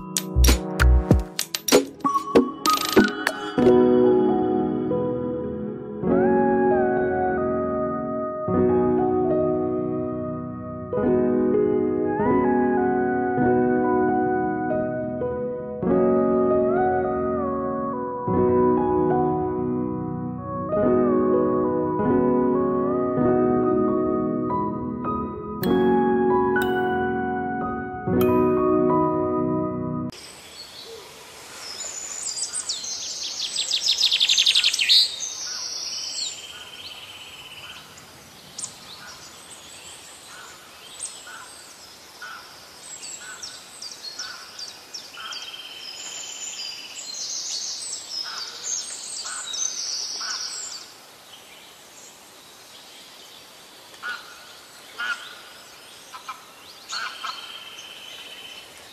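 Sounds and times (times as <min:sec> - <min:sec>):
birds chirping and trilling: 0:31.6 - 0:58.9.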